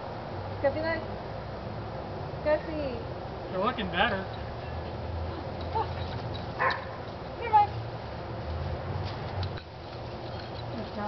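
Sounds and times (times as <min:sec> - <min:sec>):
dog yipping: 0:05.6 - 0:07.1.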